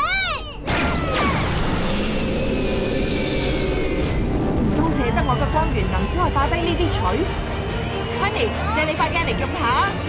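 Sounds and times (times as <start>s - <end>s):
cartoon energy blast: 0.6s - 4.3s.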